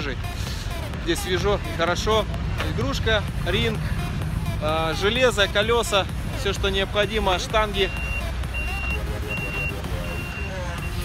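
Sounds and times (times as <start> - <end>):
low rumble: 0.4 - 7.7
vehicle reversing alarm beeping: 7.5 - 11.0.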